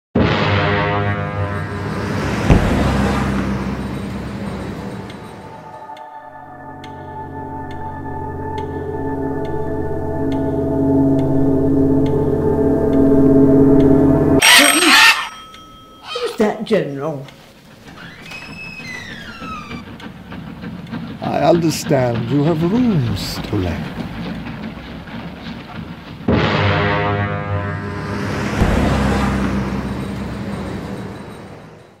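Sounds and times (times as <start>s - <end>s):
deep boom: 0.2s - 5.5s, 26.3s - 31.5s
eerie music drone: 0.4s - 16.2s, 17.6s - 32.0s
doorbell ringing: 6.4s - 16.7s.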